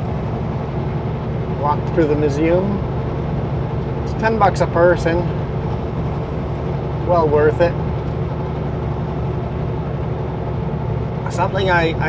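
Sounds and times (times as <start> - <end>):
truck engine and road rumble: 0.0 - 12.0.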